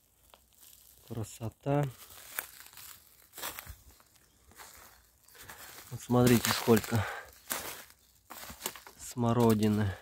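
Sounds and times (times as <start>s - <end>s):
footsteps in dry leaves: 0.0s - 10.0s.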